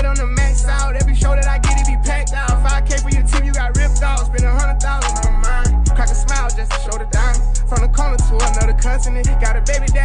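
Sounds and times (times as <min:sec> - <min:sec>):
fast hi-hats: 0:00.0 - 0:10.0
hip hop beat with sliding bass: 0:00.0 - 0:10.0
vocal line over beat: 0:00.0 - 0:10.0.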